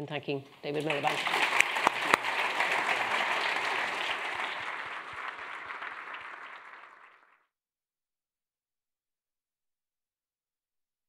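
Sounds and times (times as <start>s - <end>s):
audience applauding: 0.7s - 7.5s.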